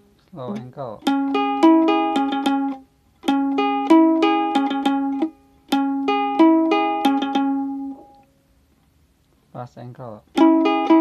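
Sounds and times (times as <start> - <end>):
ukulele picked chords: 0.4 - 8.2, 10.3 - 11.0.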